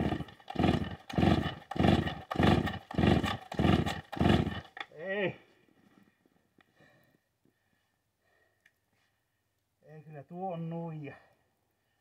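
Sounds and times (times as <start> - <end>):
chainsaw pull-start cranking: 0.0 - 4.9.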